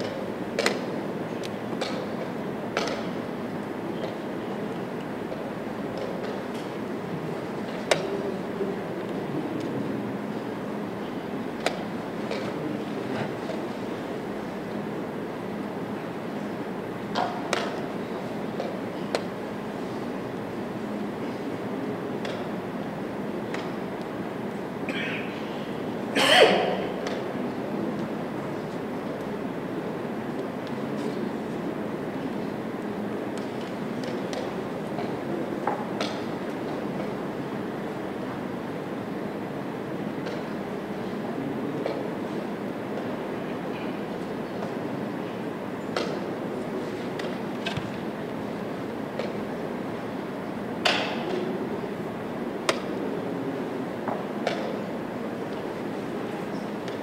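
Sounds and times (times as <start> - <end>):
low hall hum: 0.0 - 57.0.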